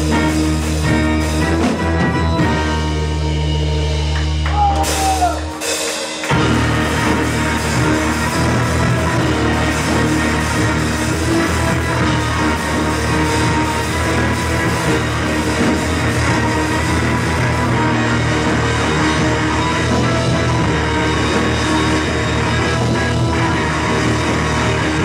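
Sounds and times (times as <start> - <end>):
electric guitar: 0.0 - 25.0
keyboard: 0.0 - 25.0
live band playing loud: 0.0 - 25.0.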